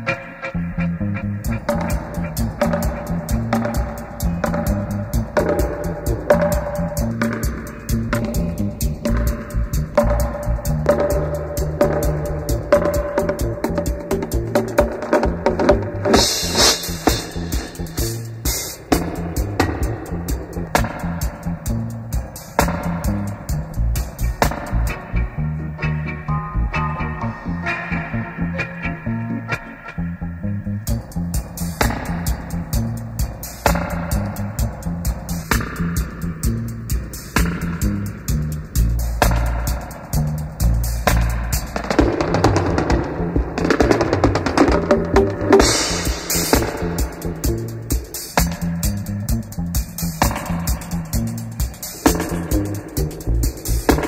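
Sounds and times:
drum kit hits: 0.0s - 29.0s, 30.9s - 54.0s
deep bass line: 0.0s - 54.0s.

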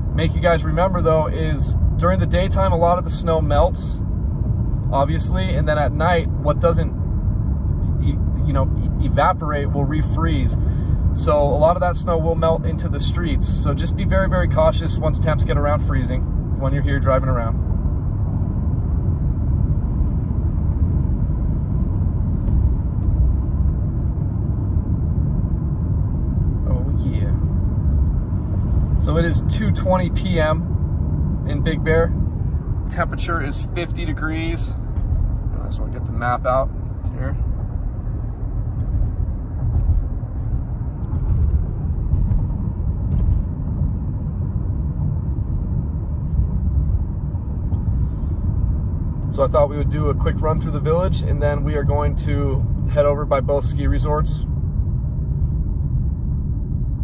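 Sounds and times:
car road rumble from inside: 0.0s - 57.0s.

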